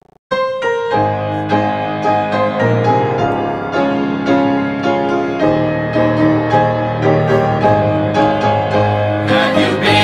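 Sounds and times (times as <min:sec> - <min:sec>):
instrumental hymn on piano: 0:00.4 - 0:10.0.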